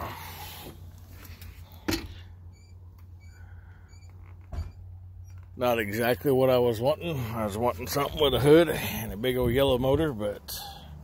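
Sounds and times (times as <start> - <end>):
low hum in truck cab: 0.0 - 11.0.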